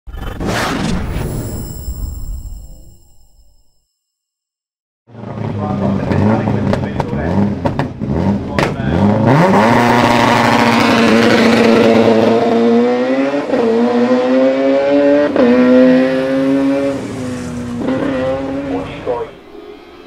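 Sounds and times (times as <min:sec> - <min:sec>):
race car engine revving hard: 0:05.1 - 0:19.5.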